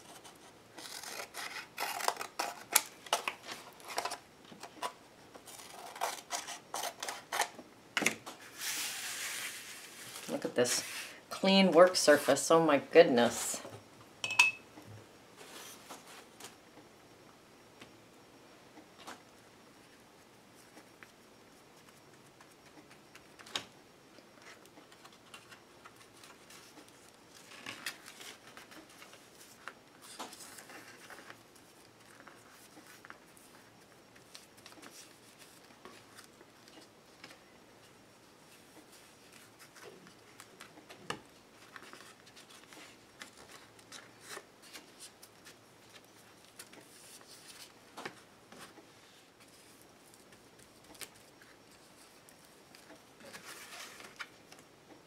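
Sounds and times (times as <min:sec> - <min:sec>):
scissors snipping paper: 0:00.8 - 0:02.9
paper rubbing and rustling: 0:08.4 - 0:11.1.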